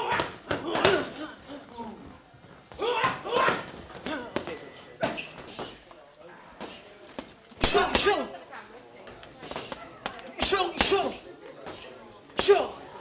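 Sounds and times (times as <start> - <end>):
punches on boxing pads: 9.4 - 11.2.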